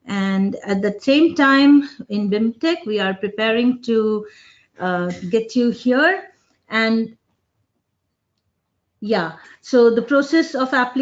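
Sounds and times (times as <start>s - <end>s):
woman speaking: 0.0s - 7.1s, 9.0s - 11.0s.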